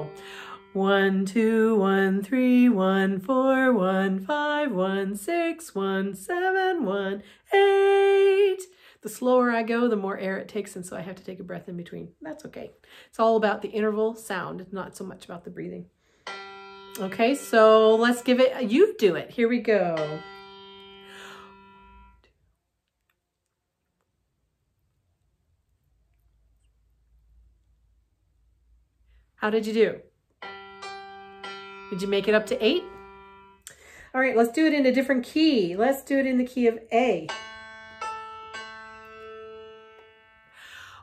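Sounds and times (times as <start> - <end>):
sustained keyboard note: 16.3 - 19.0, 19.8 - 22.2, 30.4 - 33.7.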